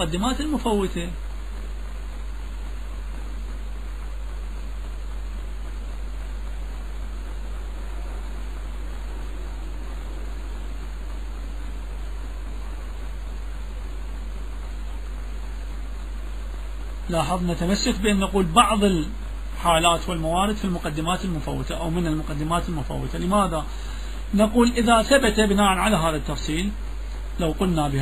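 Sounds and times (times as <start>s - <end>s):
background hiss: 0.0s - 28.0s
low hum: 0.0s - 28.0s.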